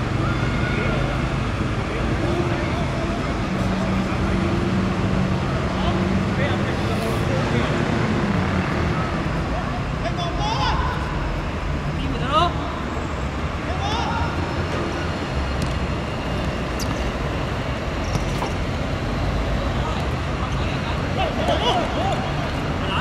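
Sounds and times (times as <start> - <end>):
distant city traffic rumble: 0.0 - 23.0
players shouting: 13.5 - 15.4.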